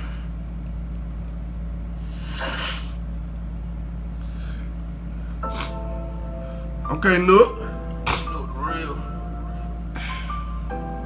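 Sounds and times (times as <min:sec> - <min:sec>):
steady low hum: 0:00.0 - 0:11.0
short breathy whoosh: 0:02.0 - 0:03.0.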